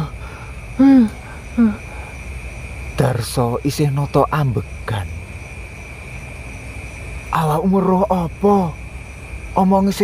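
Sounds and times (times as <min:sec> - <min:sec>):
night insects droning: 0:00.0 - 0:10.0.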